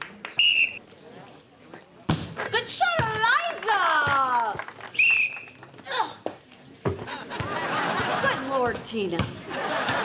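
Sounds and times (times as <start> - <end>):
referee's whistle: 0.4 - 0.8, 5.0 - 5.5.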